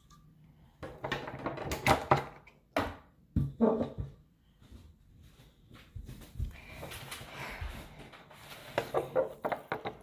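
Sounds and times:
objects knocking and clattering: 0.0s - 4.2s, 8.6s - 10.0s.

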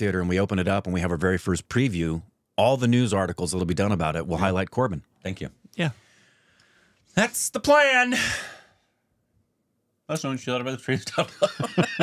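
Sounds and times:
man speaking: 0.0s - 6.0s, 7.1s - 8.6s, 10.1s - 12.0s
man sighing: 8.1s - 8.8s.

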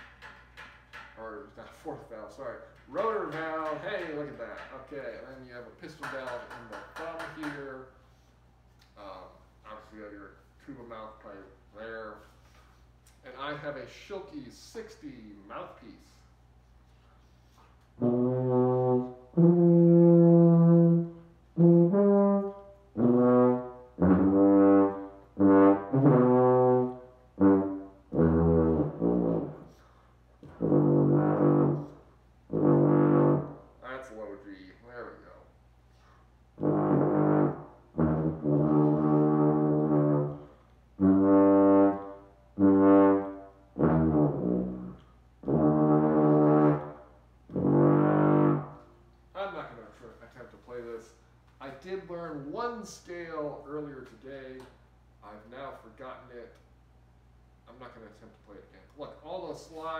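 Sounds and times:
low brass bugle notes: 17.5s - 34.0s, 36.6s - 49.0s.

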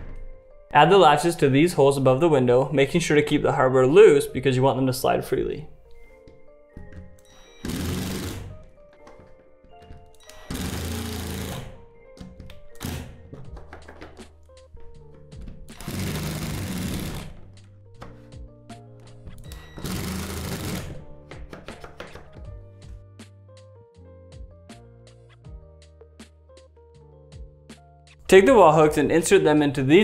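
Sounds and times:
power drill driving screws: 7.6s - 8.5s, 10.2s - 11.8s, 15.8s - 17.4s, 19.5s - 21.0s.

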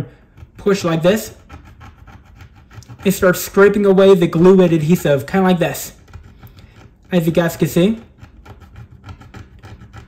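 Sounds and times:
screwdriver scraping glass: 0.0s - 10.0s.

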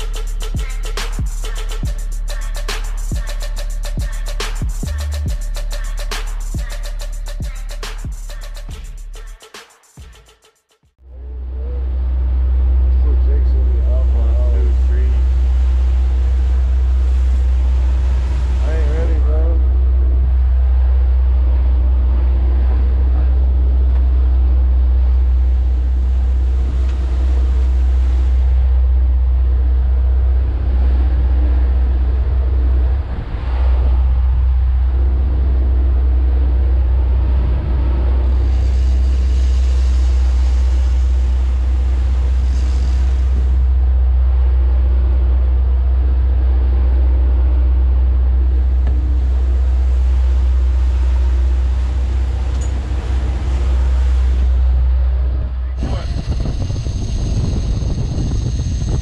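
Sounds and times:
churning wake: 0.0s - 7.7s, 11.0s - 59.0s
boat engines rumbling: 0.0s - 8.7s, 11.0s - 59.0s
wind rushing: 30.4s - 44.2s, 49.7s - 59.0s.

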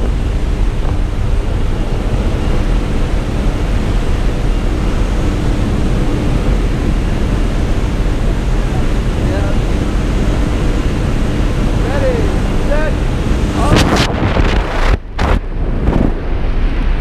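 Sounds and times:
plane engine and propeller droning: 0.0s - 17.0s
wind rushing through open door: 0.0s - 17.0s.

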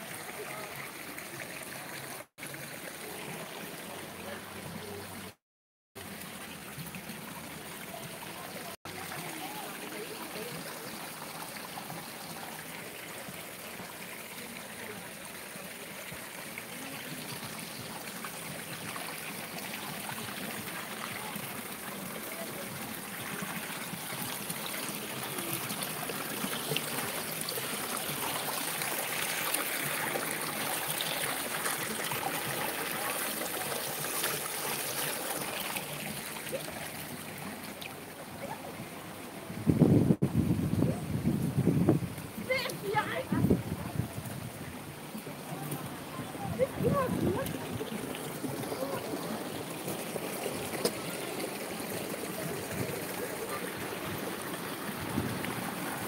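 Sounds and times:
water trickling over rocks: 0.0s - 5.4s, 6.0s - 56.0s.

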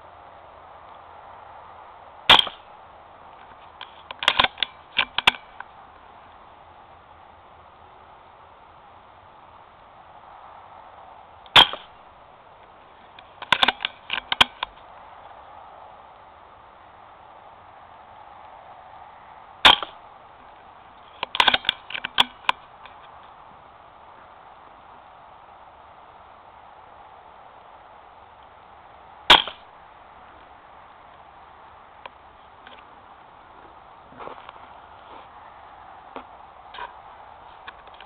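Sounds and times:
faint steady hiss: 0.0s - 38.0s
rifle shot: 2.3s - 2.6s, 11.6s - 11.9s, 19.6s - 20.0s, 29.3s - 29.7s.

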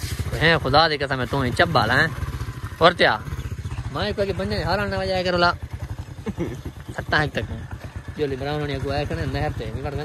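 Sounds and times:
motorcycle engine chugging: 0.0s - 10.0s.

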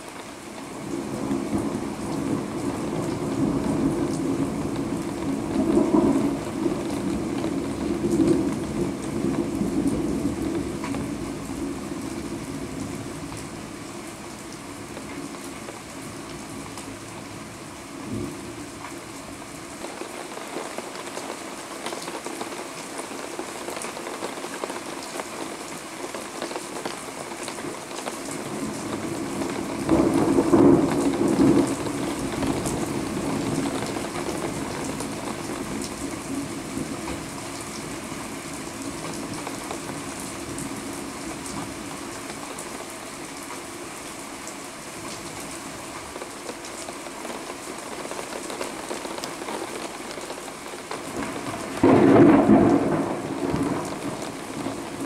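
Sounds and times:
heavy rain falling: 0.0s - 55.0s
thunder rumbling: 0.8s - 13.7s, 28.4s - 41.8s, 48.2s - 55.0s.

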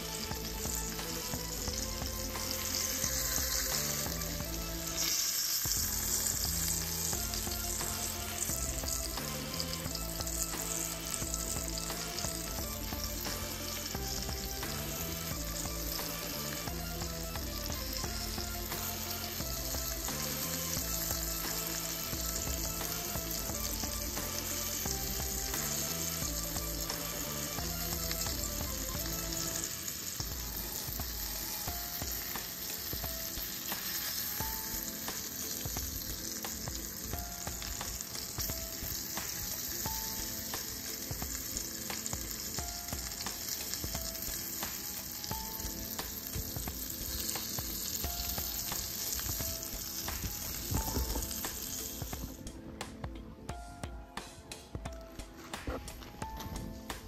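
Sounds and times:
fish fillets sizzling in oil: 0.0s - 52.8s, 55.1s - 57.0s.

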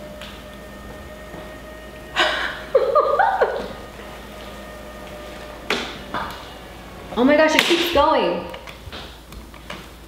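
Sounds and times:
recliner motor humming: 0.0s - 9.6s.

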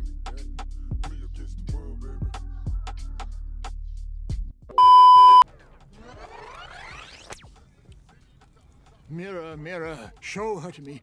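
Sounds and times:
music: 0.0s - 4.8s, 5.4s - 11.0s
loud electronic beep: 4.8s - 5.4s.

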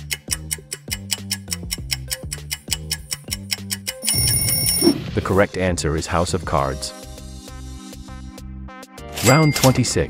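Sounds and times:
fast clock ticking: 0.0s - 4.8s
countdown timer music: 0.0s - 5.0s
bright held ringing tone: 4.0s - 4.9s.

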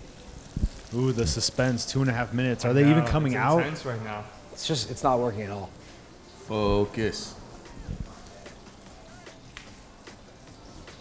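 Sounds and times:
hot oil crackling in fryer: 0.0s - 4.6s.

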